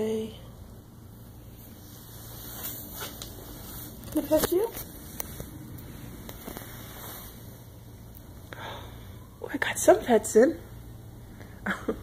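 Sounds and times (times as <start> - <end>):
steady low hum: 0.0 - 12.0
faint rustling: 1.4 - 8.3.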